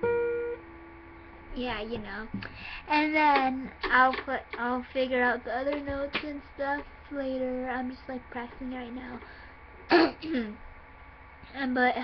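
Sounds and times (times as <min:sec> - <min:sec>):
girl clearing her throat: 0:09.9 - 0:10.6.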